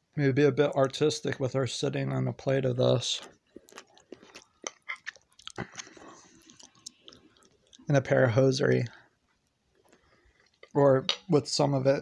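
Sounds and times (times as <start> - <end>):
person chewing: 3.2 - 7.9, 9.3 - 10.7.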